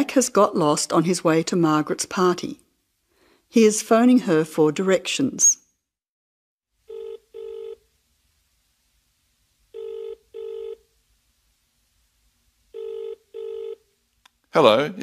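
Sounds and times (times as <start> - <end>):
double-ring telephone ringing tone: 6.8 - 7.8, 9.7 - 10.8, 12.7 - 13.8.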